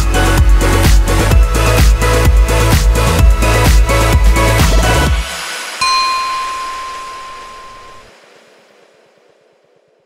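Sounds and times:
bell-like ding: 0:05.8 - 0:08.1.

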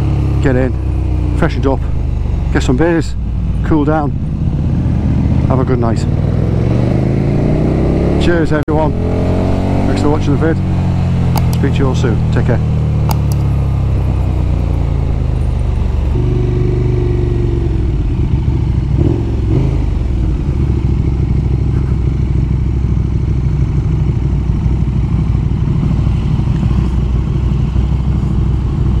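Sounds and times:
motorcycle engine running: 0:00.0 - 0:29.0.

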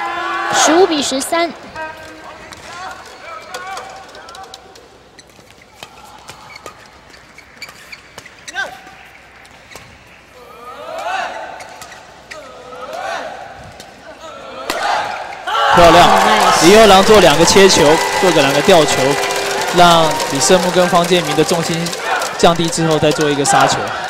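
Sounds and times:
spectators shouting and cheering: 0:00.0 - 0:01.4, 0:14.5 - 0:24.0.

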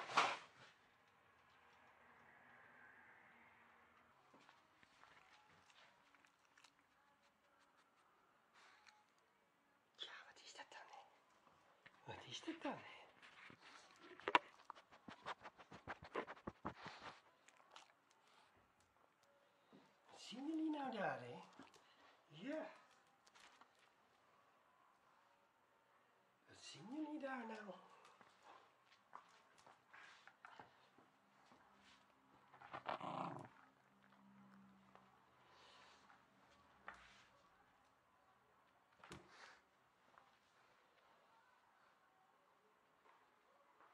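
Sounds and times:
faint whispering: 0:09.9 - 0:17.4
dog growling: 0:32.7 - 0:33.7.

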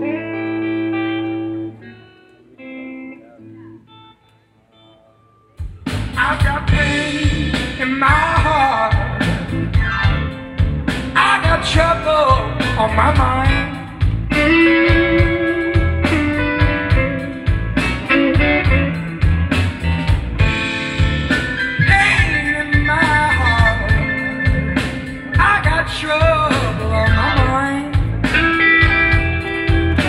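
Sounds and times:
blues band playing: 0:00.0 - 0:30.0
man singing: 0:06.1 - 0:09.8, 0:11.1 - 0:15.8, 0:21.8 - 0:30.0.

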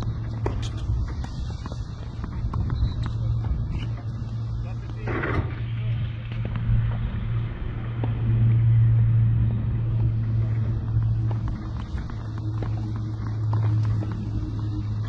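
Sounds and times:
low outdoor rumble: 0:00.0 - 0:15.0
rush of noise: 0:00.0 - 0:15.0
faint voices: 0:00.1 - 0:07.7.

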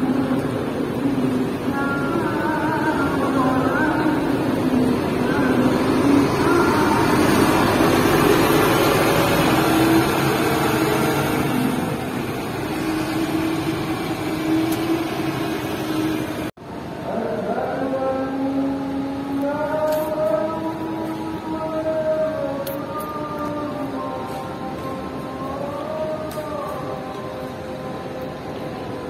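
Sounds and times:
bus engine driving off: 0:00.0 - 0:17.0.

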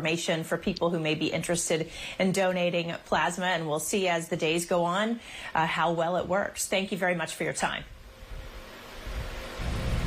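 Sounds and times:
faint hum: 0:00.0 - 0:10.0
steady hiss: 0:07.7 - 0:10.0
low rumble: 0:07.9 - 0:10.0.

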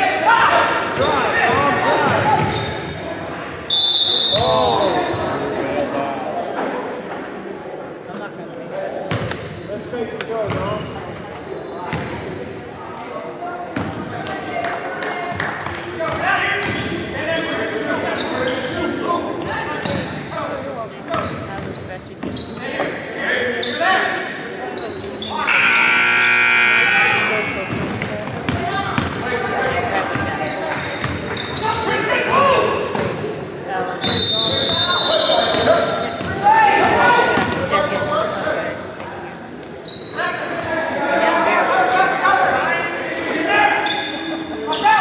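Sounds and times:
indistinct voices echoing: 0:22.7 - 0:45.0
loud steady tone: 0:25.5 - 0:27.7.

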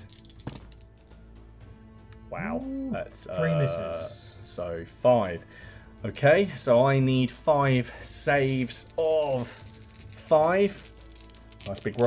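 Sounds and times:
dice clattering in a tray: 0:00.0 - 0:01.2, 0:07.4 - 0:12.0
quiet background music: 0:00.0 - 0:12.0.

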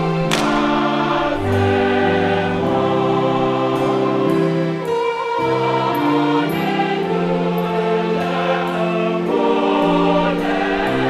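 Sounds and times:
mixed choir singing chords: 0:00.0 - 0:11.0.

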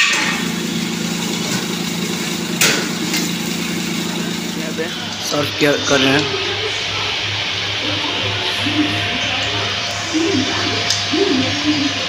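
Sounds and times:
motor humming: 0:00.0 - 0:12.0.

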